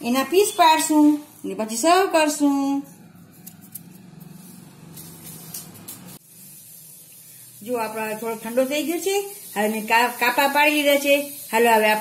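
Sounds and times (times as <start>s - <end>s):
woman speaking: 0.0s - 3.0s, 7.6s - 12.0s.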